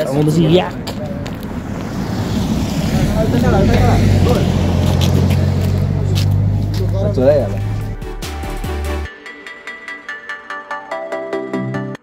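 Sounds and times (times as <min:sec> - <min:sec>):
vehicle engine humming: 0:00.0 - 0:09.0.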